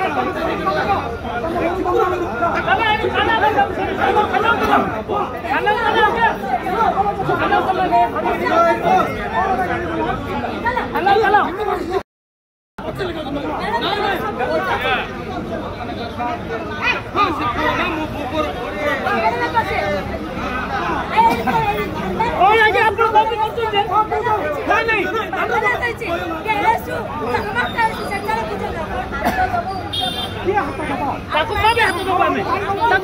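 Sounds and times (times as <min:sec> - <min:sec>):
people talking over one another: 0:00.0 - 0:12.0, 0:12.8 - 0:33.0.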